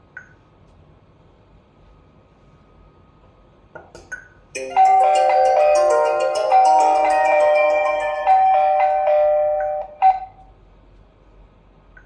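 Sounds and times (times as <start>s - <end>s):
faint hum: 0.0s - 12.0s
intercom chiming ringtone: 4.6s - 10.4s.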